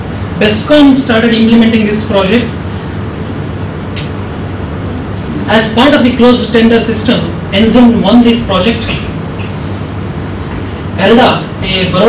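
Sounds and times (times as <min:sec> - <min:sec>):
low sound system hum: 0:00.0 - 0:12.0.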